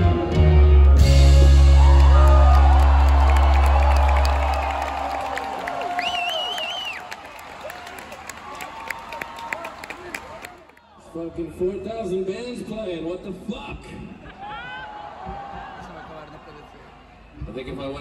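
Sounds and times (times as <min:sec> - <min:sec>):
crowd cheering and screaming: 0:01.2 - 0:10.7, 0:14.4 - 0:16.9
loud warbling whistle: 0:06.0 - 0:07.1.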